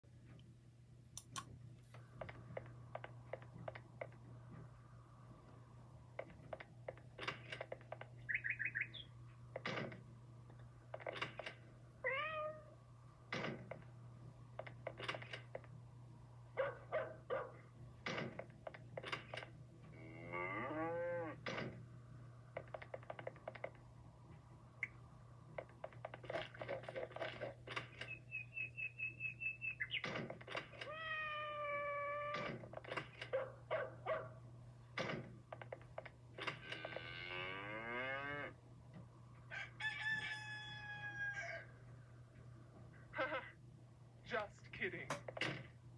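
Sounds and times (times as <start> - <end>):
steady low hum: 0.1 - 7.2
sharp clicks and knocks: 1.2 - 4.7, 6.1 - 8.3, 22.5 - 28.2, 35.0 - 37.0, 45.0 - 45.8
cat-like meows: 12.0 - 12.7, 30.8 - 32.4
cartoon animal calls: 30.8 - 32.5.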